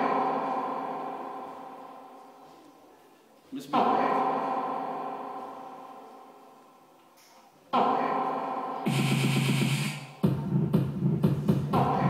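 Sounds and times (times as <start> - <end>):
held electronic note: 7.8 - 10.2.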